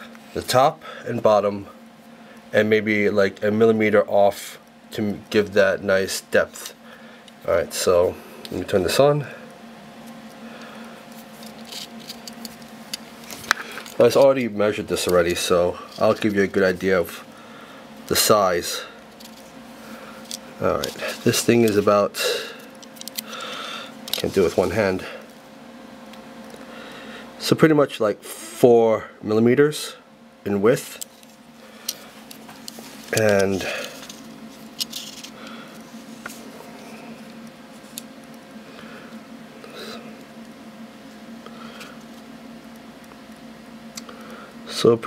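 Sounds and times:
faint steady hum: 0:00.0 - 0:45.0.

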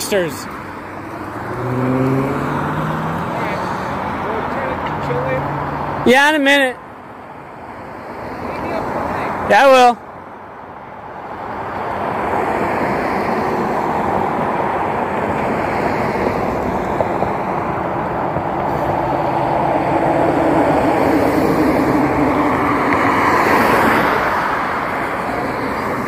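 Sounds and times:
road traffic passing: 0:00.0 - 0:26.0.

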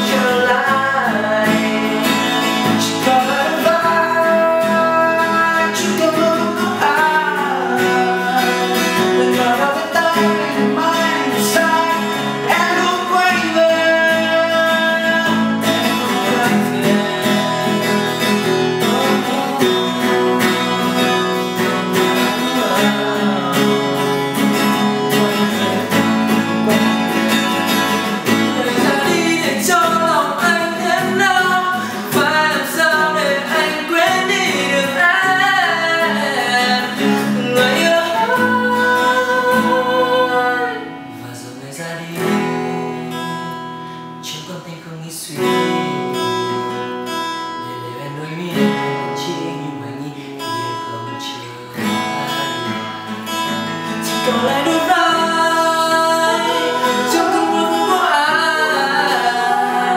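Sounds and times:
men singing pop song: 0:00.0 - 0:43.6, 0:44.2 - 0:46.6, 0:47.7 - 0:59.9
acoustic guitar: 0:00.0 - 0:59.9.

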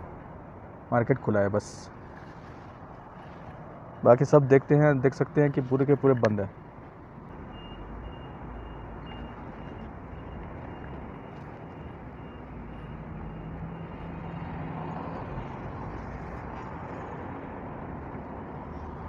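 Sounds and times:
road and engine noise inside a car: 0:00.0 - 0:19.0
faint high beeps: 0:07.4 - 0:13.8.

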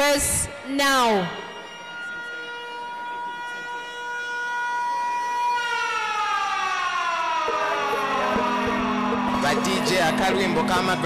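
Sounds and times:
siren-like tone sliding down: 0:01.9 - 0:11.0
music: 0:07.5 - 0:11.0.

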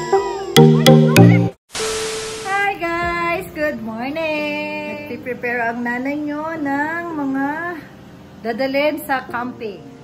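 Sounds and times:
static hiss glitch effect: 0:01.7 - 0:02.8.

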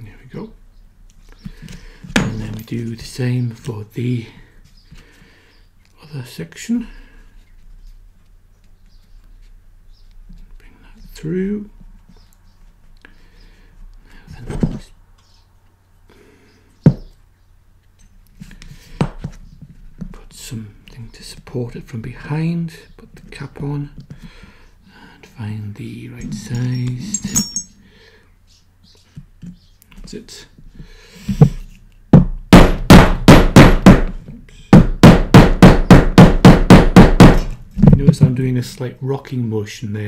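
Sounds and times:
mallet striking metal punch: 0:32.2 - 0:34.1, 0:34.8 - 0:37.5.

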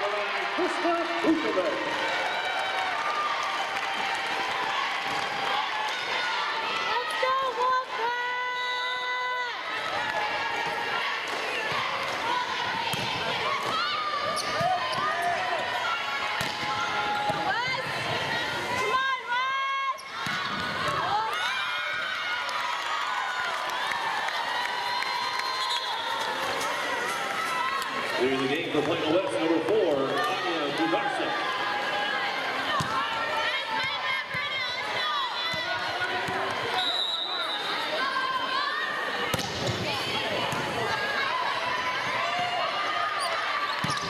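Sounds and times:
crowd voices: 0:00.0 - 0:44.0.

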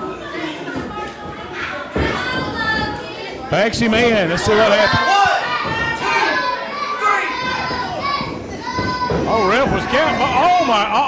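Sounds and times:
children's voices: 0:00.0 - 0:03.6, 0:04.4 - 0:11.0
crowd shouting and yelling: 0:00.0 - 0:11.0.

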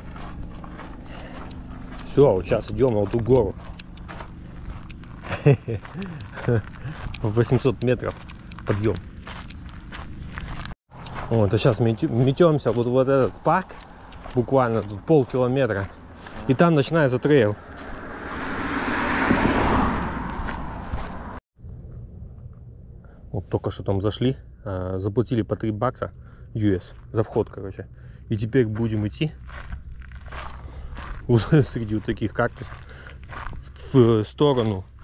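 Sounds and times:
car passing: 0:00.0 - 0:10.2, 0:10.9 - 0:21.4
footsteps on gravel: 0:00.0 - 0:21.4, 0:26.6 - 0:35.0
open-air background: 0:00.0 - 0:35.0
man's voice: 0:02.1 - 0:03.6, 0:07.2 - 0:09.0, 0:11.3 - 0:17.6, 0:31.3 - 0:32.8, 0:33.6 - 0:34.9.

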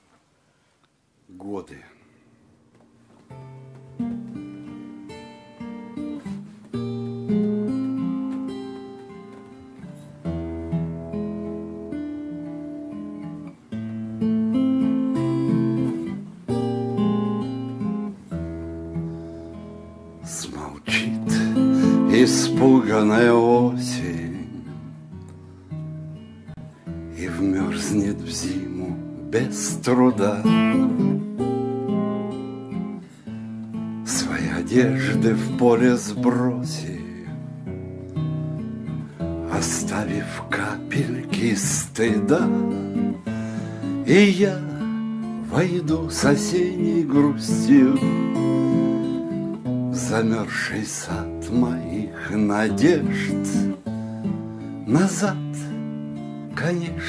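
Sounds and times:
acoustic guitar chords: 0:02.0 - 0:57.0.

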